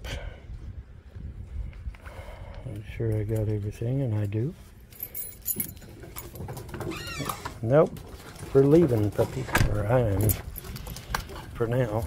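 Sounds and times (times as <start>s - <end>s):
keys jingling: 4.8s - 7.2s, 8.2s - 11.5s.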